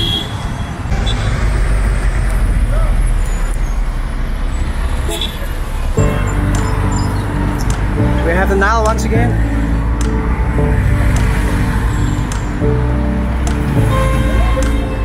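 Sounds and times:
dense road traffic rumble: 0.0s - 15.0s
background music: 6.0s - 15.0s.

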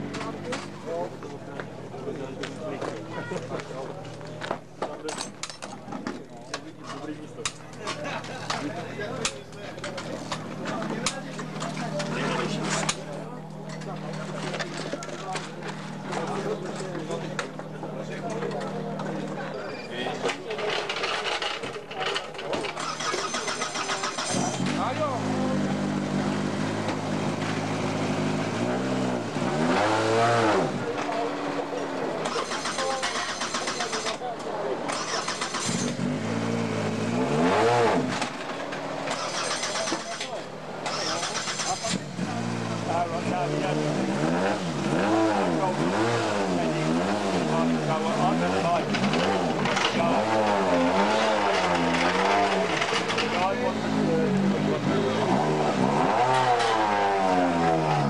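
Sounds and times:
rally car engine revving: 7.4s - 19.5s, 22.6s - 58.0s.

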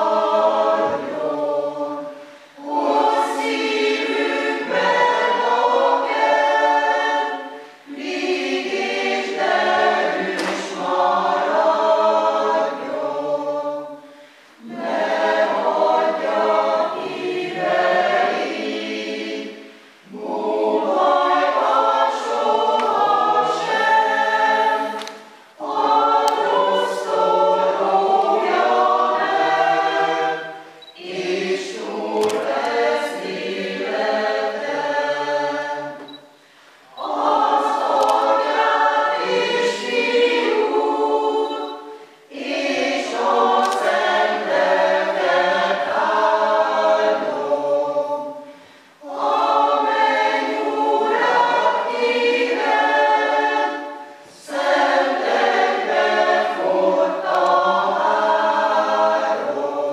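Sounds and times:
mixed choir singing a hymn: 0.0s - 59.9s.

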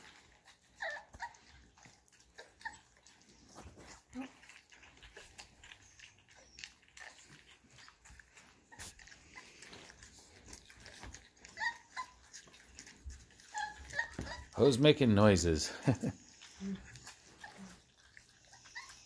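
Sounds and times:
puppies lapping and chewing: 0.0s - 19.0s
puppies squeaking: 0.0s - 19.0s.

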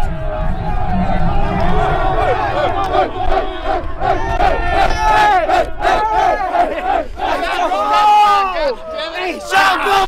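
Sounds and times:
men yelling together: 4.0s - 10.0s.

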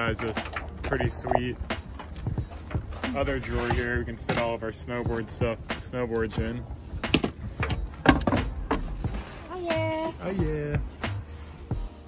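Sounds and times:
snowboard knocking and scraping: 2.8s - 11.2s.

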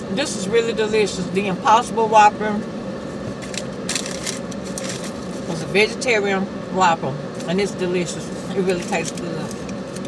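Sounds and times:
low car cabin hum: 0.0s - 10.0s
paper wrapper crackling: 3.4s - 5.4s.

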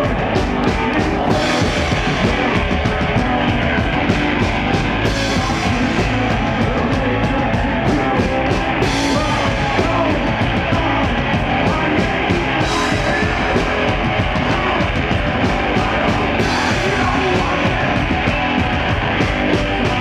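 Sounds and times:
distorted electric guitars: 0.0s - 20.0s
drum beat: 0.0s - 20.0s
man singing: 0.0s - 20.0s
rock band playing: 0.0s - 20.0s.

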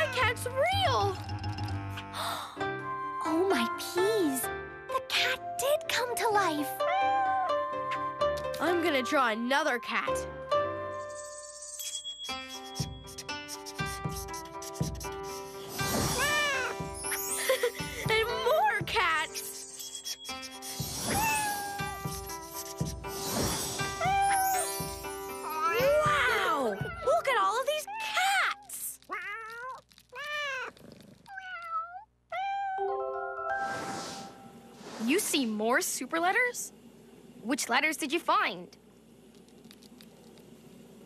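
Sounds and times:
cartoon cat meowing: 0.0s - 0.4s, 16.1s - 16.8s, 21.1s - 22.2s, 24.0s - 24.8s, 31.3s - 33.0s
light cartoon music: 0.0s - 27.8s, 32.5s - 34.8s
scratchy crayon drawing effect: 12.3s - 26.6s.

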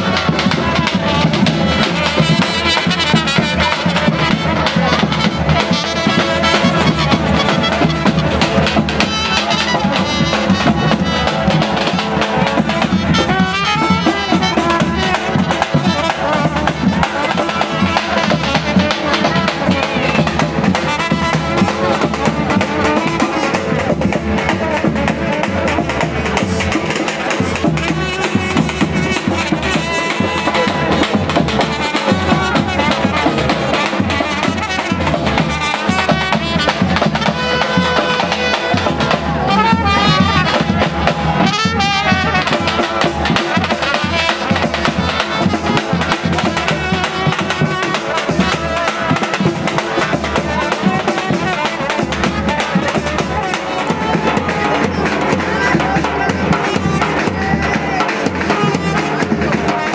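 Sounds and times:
street band trumpet and snare: 0.0s - 59.9s.

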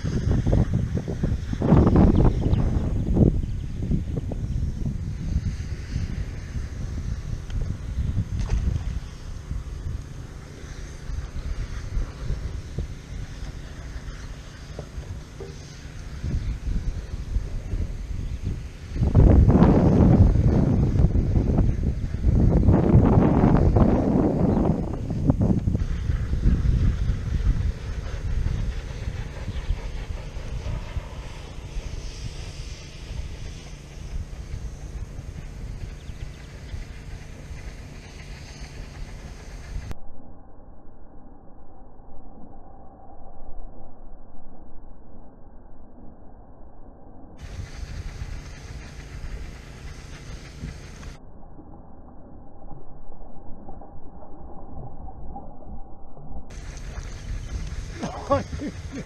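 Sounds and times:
wind buffeting microphone: 0.0s - 40.0s, 47.4s - 51.2s, 56.5s - 59.0s.

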